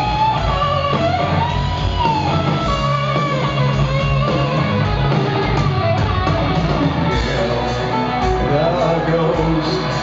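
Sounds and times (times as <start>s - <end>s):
live hard rock band playing: 0.0s - 10.0s
male lead vocal: 7.3s - 10.0s.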